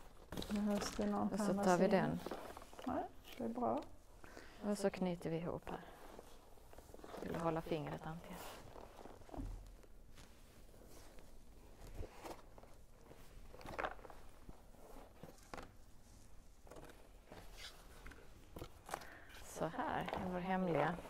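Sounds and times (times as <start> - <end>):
cardboard and string rustling: 0.0 - 21.0.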